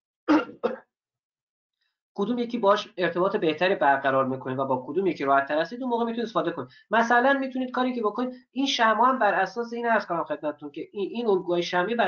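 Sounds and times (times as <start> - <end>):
man clearing his throat: 0.3 - 0.8.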